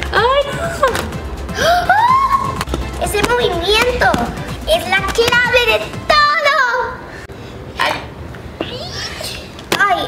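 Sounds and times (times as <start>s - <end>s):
girl exclaiming: 1.6s - 2.6s.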